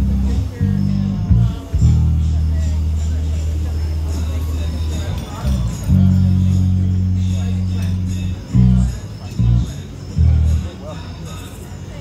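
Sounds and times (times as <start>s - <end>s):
held bass note: 0.0s - 4.2s, 5.4s - 10.7s
voices: 0.0s - 12.0s.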